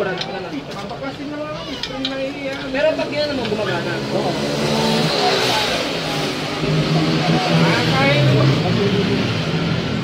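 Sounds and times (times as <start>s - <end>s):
people talking: 0.0s - 9.3s.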